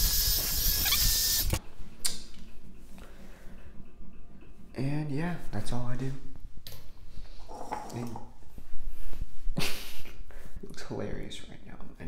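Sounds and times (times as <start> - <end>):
man laughing: 9.6 - 10.2.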